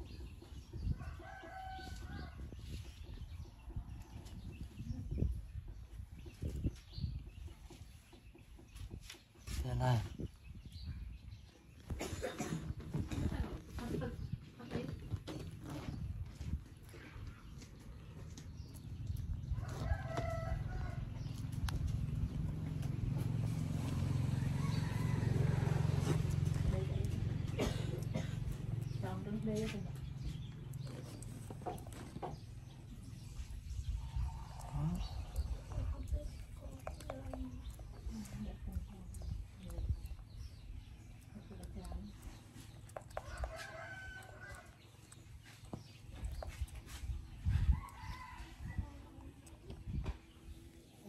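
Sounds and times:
steady low rumble: 16.0 - 51.0
rooster crowing: 19.6 - 21.1, 24.2 - 26.1, 43.2 - 44.7.

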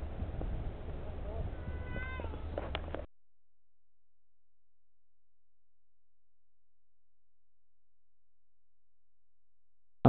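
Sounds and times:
wind rumble on microphone: 0.0 - 3.1.

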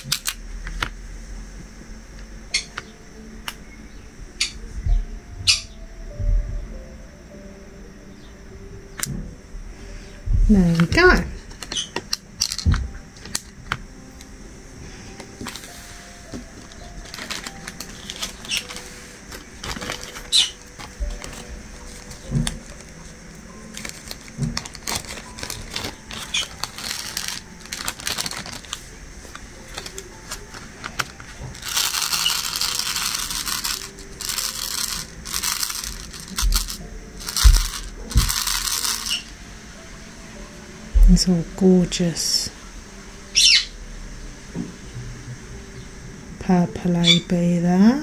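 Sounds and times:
rustling noise: 14.8 - 39.3.

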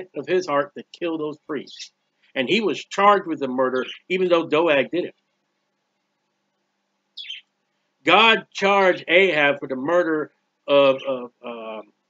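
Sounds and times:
faint steady hum: 0.0 - 12.0
high-pitched falling chirp: 7.2 - 7.4.

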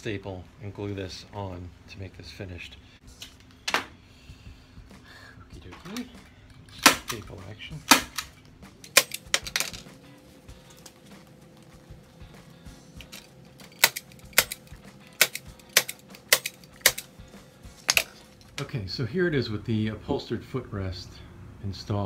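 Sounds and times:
staple gun snaps: 13.8 - 17.1.

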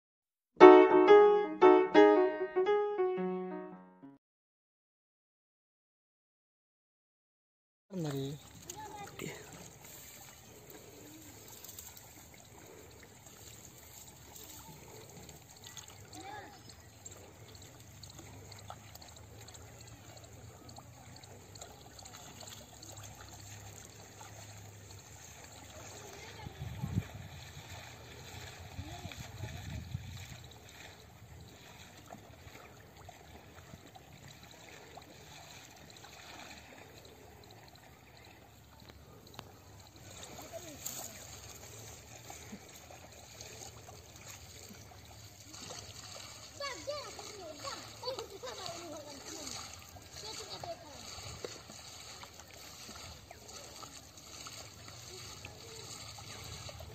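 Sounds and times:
wading in water: 7.9 - 56.9
water splashing and trickling: 7.9 - 56.9.

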